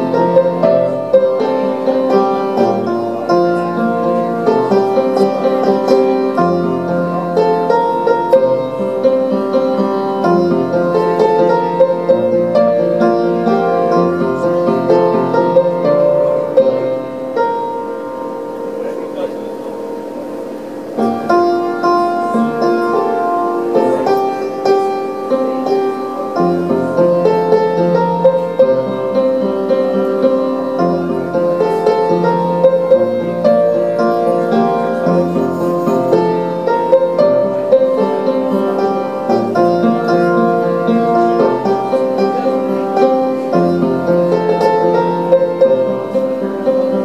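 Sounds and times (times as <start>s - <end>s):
solo piano playing: 0.0s - 47.0s.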